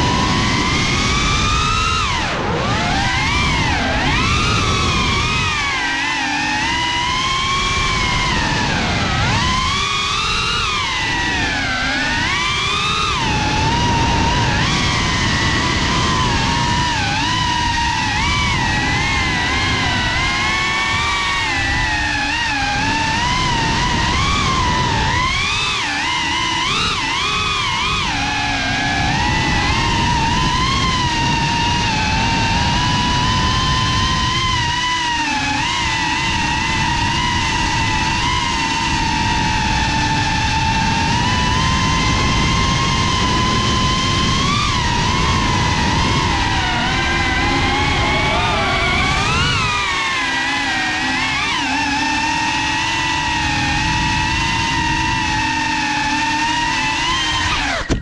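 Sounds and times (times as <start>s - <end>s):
drone motors and propellers whining: 0.0s - 58.0s
rushing low rumble: 41.6s - 50.1s.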